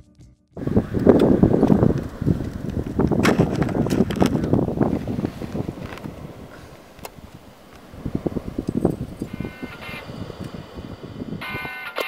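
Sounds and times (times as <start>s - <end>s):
wind buffeting microphone: 0.6s - 12.0s.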